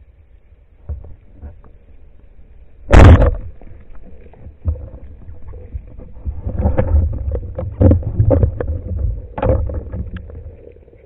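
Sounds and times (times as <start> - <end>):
underwater rumble of water: 0.0 - 11.0
clicks and knocks: 6.0 - 10.6.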